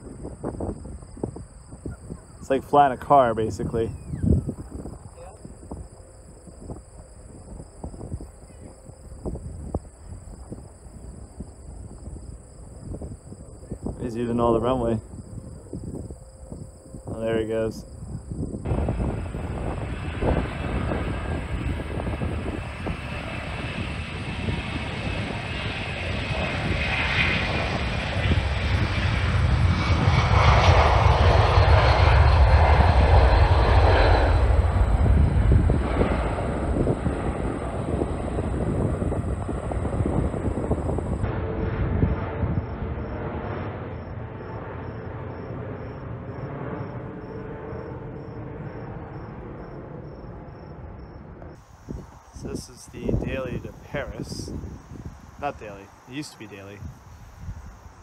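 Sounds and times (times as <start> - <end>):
jet airliner taking off: 0.0 - 58.0
steady jet rumble: 0.0 - 58.0.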